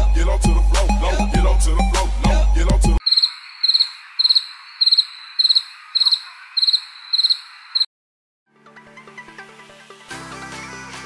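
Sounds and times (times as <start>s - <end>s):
crickets chirping: 3.0s - 7.9s.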